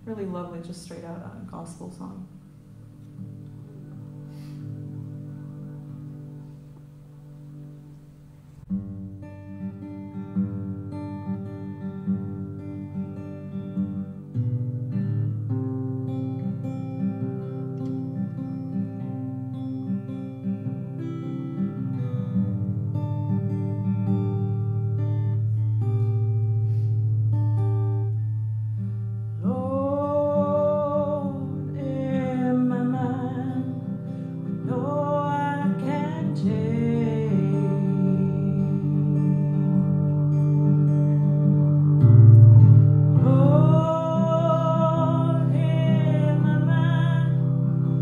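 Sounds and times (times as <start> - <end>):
guitar chords ringing: 0.0 - 48.0
woman singing: 29.4 - 41.4, 43.2 - 48.0.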